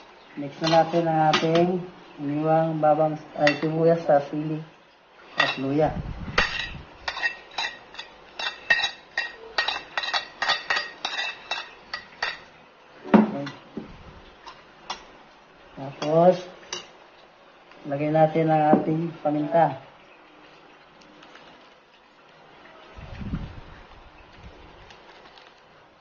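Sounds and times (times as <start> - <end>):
person speaking: 0.4 - 4.8, 5.4 - 6.3, 15.8 - 16.6, 17.8 - 19.9
spoon clinking on ceramic plate: 6.4 - 12.5.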